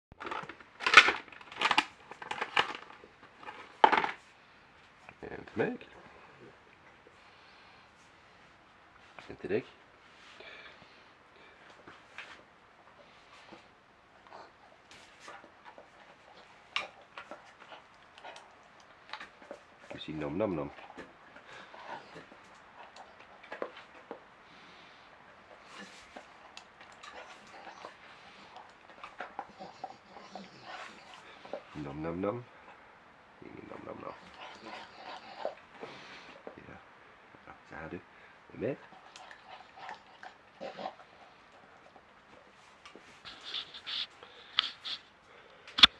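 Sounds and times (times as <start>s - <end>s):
dog claws clicking on tiled floor: 0.2s - 4.2s
dog mouth clicks: 42.9s - 45.0s, 45.7s - 45.9s.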